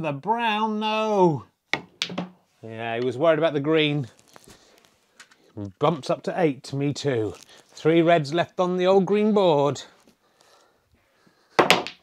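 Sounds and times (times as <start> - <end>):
snooker balls clacking: 1.8 - 2.4, 11.6 - 12.0.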